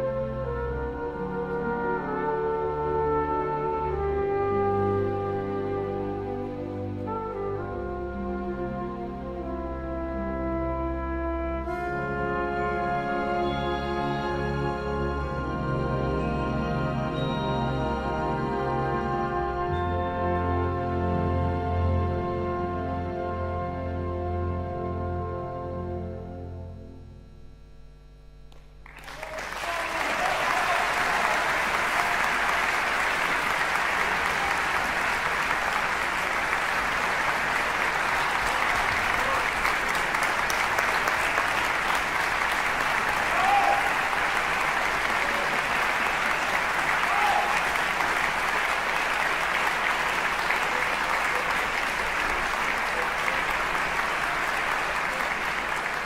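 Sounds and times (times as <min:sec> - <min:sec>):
audience applause: 0:28.8 - 0:56.0.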